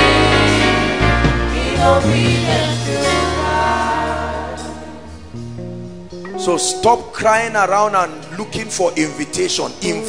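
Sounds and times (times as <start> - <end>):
choir singing gospel song: 0.0 - 5.4
low chord: 0.0 - 8.4.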